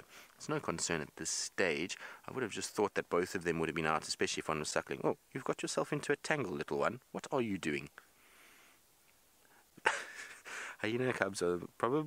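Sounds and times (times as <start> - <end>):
faint hiss: 0.0 - 12.0
sharp intake of breath: 2.0 - 2.2, 8.2 - 8.8, 10.4 - 10.8.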